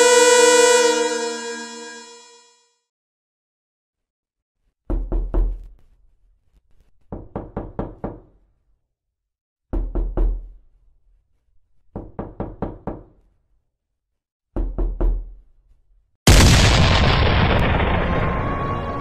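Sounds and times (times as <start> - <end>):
knocking on a door: 4.9 - 5.6, 7.1 - 8.4, 9.7 - 10.5, 11.9 - 13.2, 14.6 - 15.3.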